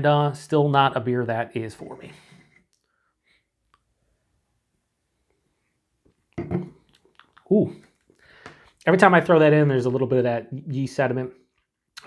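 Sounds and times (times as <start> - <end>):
glass set down on marble: 6.4 - 6.8.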